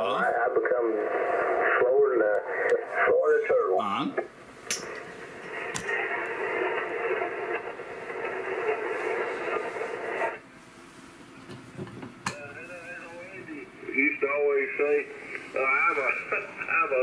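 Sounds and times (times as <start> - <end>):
faint voice from radio: 0.0 - 4.3, 12.3 - 17.0
radio band noise hiss: 0.0 - 17.0
radio click: 1.0 - 2.8, 4.2 - 10.4.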